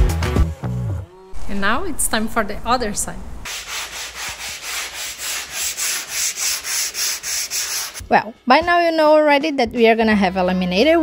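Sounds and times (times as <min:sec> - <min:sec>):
sandpaper sanding plywood: 0:03.5 - 0:08.0.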